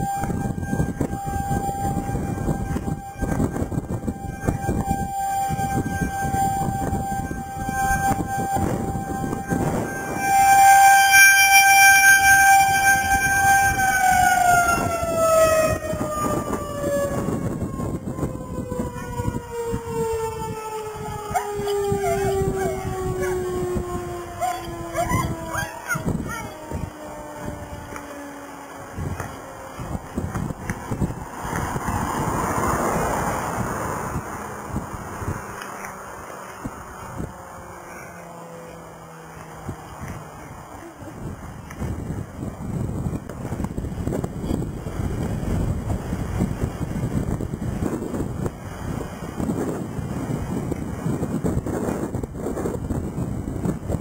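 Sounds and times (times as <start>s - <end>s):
warning siren wailing: 0.0s - 54.0s
wind buffeting microphone: 0.0s - 54.0s.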